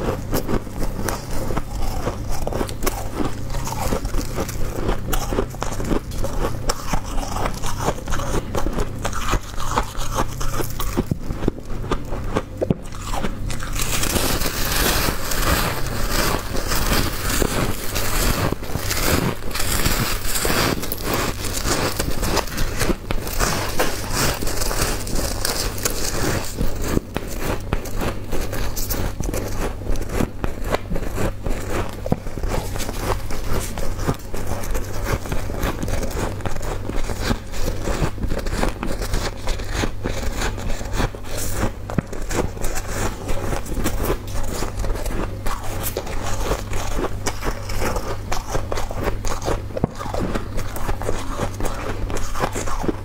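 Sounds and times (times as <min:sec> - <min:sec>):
ice being chewed: 0:00.0 - 0:53.0.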